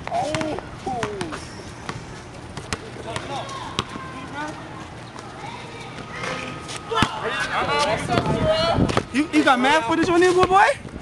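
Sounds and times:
distant people talking and calling: 0:00.0 - 0:10.8.

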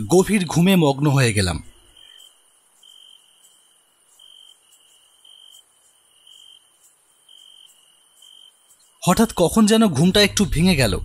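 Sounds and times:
steady high-pitched hiss: 0:00.0 - 0:11.0
crickets chirping: 0:00.1 - 0:11.0.

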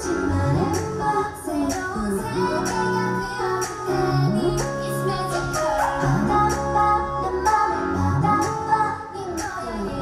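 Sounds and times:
pop dance track with female vocals: 0:00.0 - 0:10.0.

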